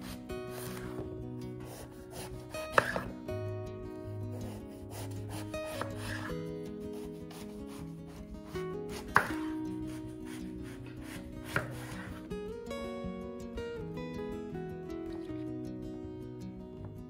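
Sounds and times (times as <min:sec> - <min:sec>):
knife slicing eggplant: 0:00.0 - 0:03.1, 0:04.3 - 0:08.2, 0:08.8 - 0:12.2
background guitar music: 0:00.0 - 0:17.0
knife knocking on wooden board: 0:09.2 - 0:09.4.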